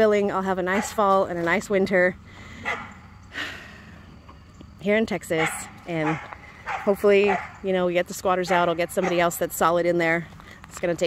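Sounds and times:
dog barking: 0:02.6 - 0:02.9, 0:05.4 - 0:07.6, 0:08.5 - 0:09.3.

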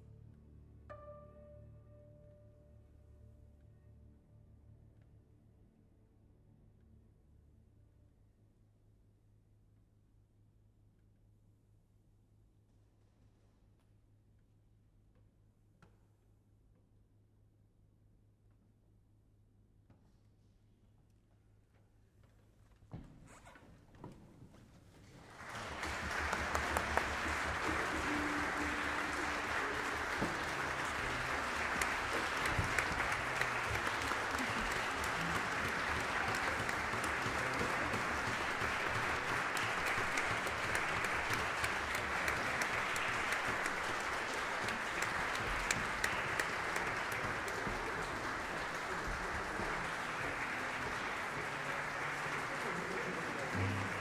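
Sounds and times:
audience applauding: 0:25.2 - 0:54.0.

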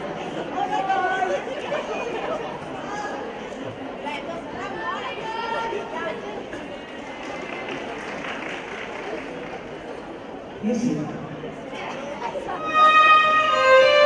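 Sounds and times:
crowd chattering: 0:00.0 - 0:14.0.

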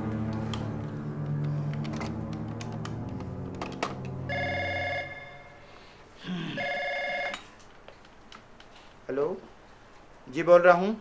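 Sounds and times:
telephone ringing: 0:04.1 - 0:05.7, 0:06.6 - 0:07.5.

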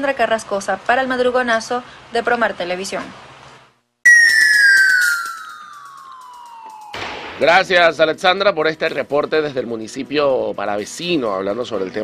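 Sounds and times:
tone gliding down in pitch: 0:04.1 - 0:07.2.

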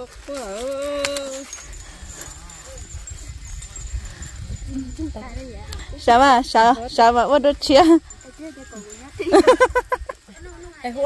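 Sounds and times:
faint rustles: 0:00.0 - 0:11.0
wind rumble on microphone: 0:00.0 - 0:11.0.

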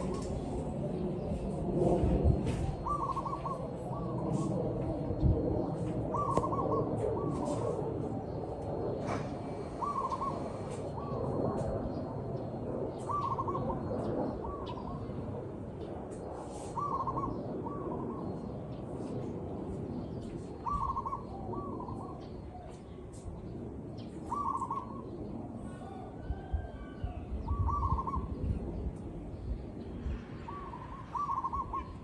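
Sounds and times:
steady background noise: 0:00.0 - 0:32.0
dove cooing: 0:02.5 - 0:04.6, 0:06.1 - 0:12.0, 0:12.9 - 0:15.2, 0:16.7 - 0:18.3, 0:20.6 - 0:22.7, 0:24.2 - 0:28.6, 0:30.4 - 0:32.0.

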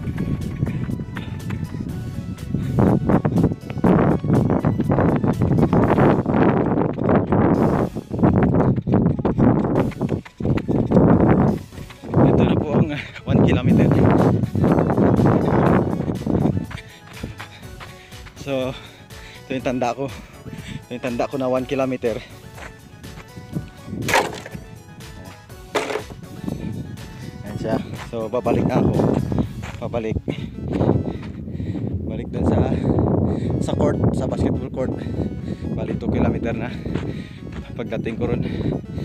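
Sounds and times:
footsteps on dirt track: 0:00.0 - 0:31.5, 0:35.8 - 0:38.4
loud breathing: 0:00.7 - 0:01.7, 0:02.4 - 0:03.5, 0:16.6 - 0:19.5, 0:20.1 - 0:20.9, 0:22.2 - 0:22.8, 0:26.4 - 0:27.4, 0:30.3 - 0:32.0, 0:32.8 - 0:33.6, 0:35.0 - 0:35.8, 0:36.8 - 0:37.6
faint background music: 0:11.4 - 0:31.0, 0:37.6 - 0:38.4.

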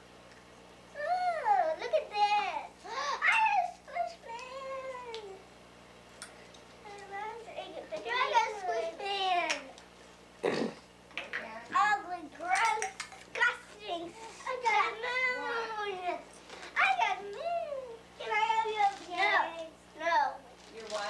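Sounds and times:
young children chattering: 0:06.8 - 0:09.8, 0:11.7 - 0:21.0.

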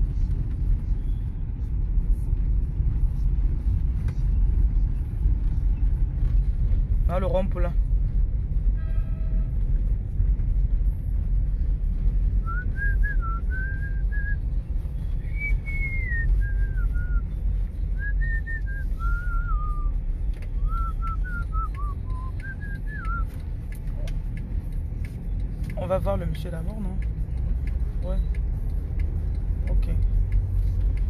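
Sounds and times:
car driving rumble inside cabin: 0:00.0 - 0:31.0
person whistling a tune: 0:12.4 - 0:14.5, 0:15.2 - 0:20.0, 0:20.6 - 0:23.4.

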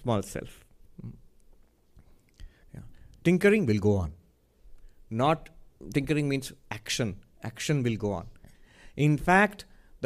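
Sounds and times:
person saying hmm: 0:01.0 - 0:01.3.

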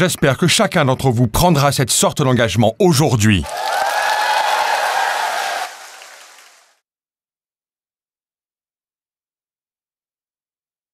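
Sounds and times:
audience applauding: 0:03.4 - 0:06.8
cheering voices: 0:03.4 - 0:06.8.

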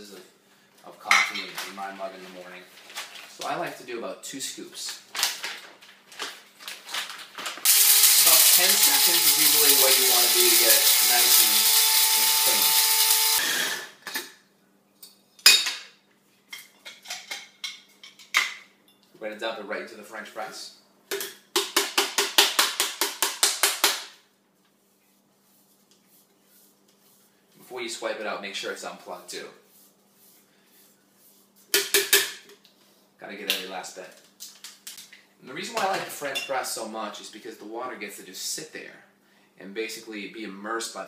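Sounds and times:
coffee grinder whirring: 0:07.6 - 0:14.0
coffee beans rattling: 0:07.7 - 0:13.4.

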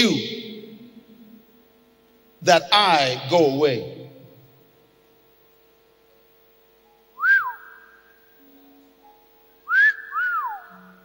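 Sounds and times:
faint steady hum: 0:00.0 - 0:11.0
person whistling: 0:07.2 - 0:08.1, 0:09.7 - 0:10.9.

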